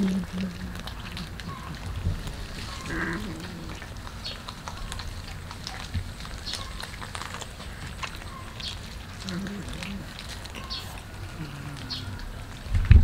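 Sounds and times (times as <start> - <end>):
cats chewing and crunching fish: 0.0 - 13.0.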